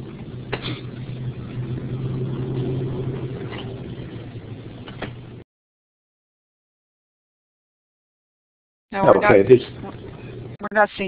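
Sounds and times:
steady low hum: 0.0 - 5.4, 8.9 - 11.0.

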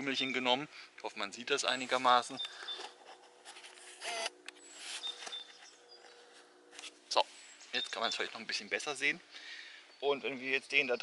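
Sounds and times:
small birds chirping: 0.0 - 3.1, 4.1 - 11.0
soft handling rustling: 1.6 - 8.7.

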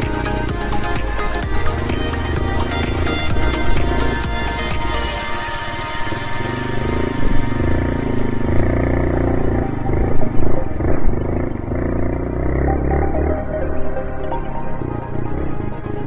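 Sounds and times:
electronic music: 0.0 - 16.0
motorcycle engine at low speed: 0.0 - 16.0.

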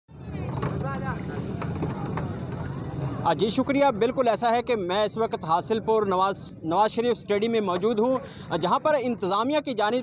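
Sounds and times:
faint voices: 0.1 - 10.0.

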